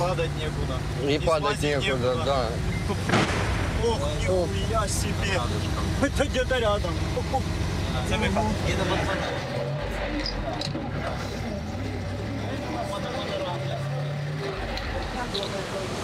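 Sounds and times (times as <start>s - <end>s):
truck engine running: 0.0s - 16.0s.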